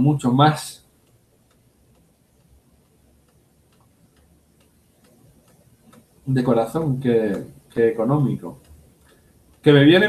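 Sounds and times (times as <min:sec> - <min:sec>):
faint regular ticks: 0:00.0 - 0:10.0.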